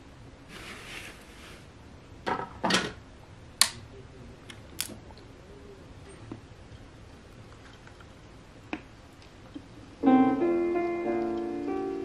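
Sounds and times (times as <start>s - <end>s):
vinyl record rustle: 0.0s - 2.0s.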